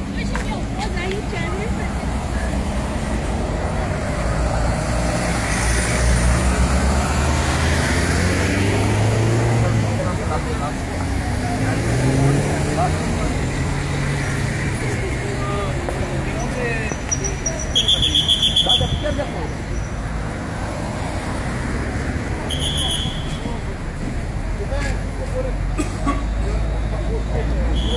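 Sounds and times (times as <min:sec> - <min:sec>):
people talking: 0:00.0 - 0:03.0, 0:09.3 - 0:19.9, 0:22.4 - 0:27.9
car engines and tyres rumbling: 0:00.0 - 0:27.9.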